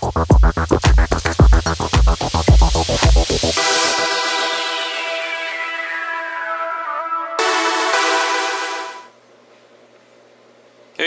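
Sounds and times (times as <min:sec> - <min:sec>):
sustained synth chord: 0:03.6 - 0:09.2.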